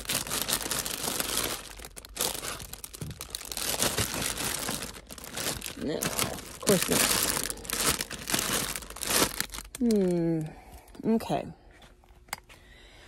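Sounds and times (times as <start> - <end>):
plastic bags crinkling: 0.0 - 10.5.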